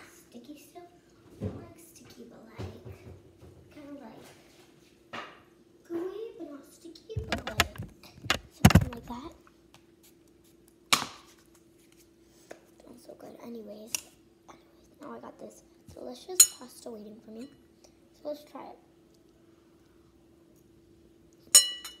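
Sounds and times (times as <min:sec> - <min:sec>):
child's voice: 0:00.0 - 0:03.1, 0:03.7 - 0:04.4, 0:05.9 - 0:07.9, 0:08.6 - 0:09.4, 0:12.8 - 0:17.6, 0:18.2 - 0:18.9
loud knocks and clatter: 0:07.2 - 0:09.3.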